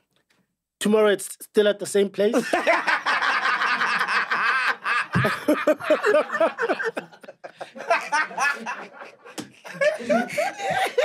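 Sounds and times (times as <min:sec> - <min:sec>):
people laughing: 0:02.3 - 0:11.0.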